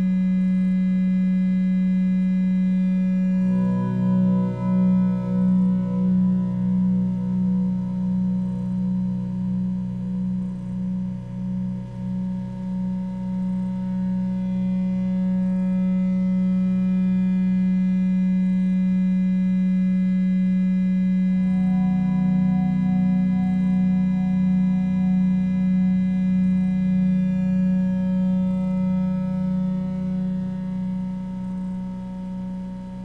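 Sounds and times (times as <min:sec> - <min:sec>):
synthesizer drone: 0:02.6 - 0:33.0.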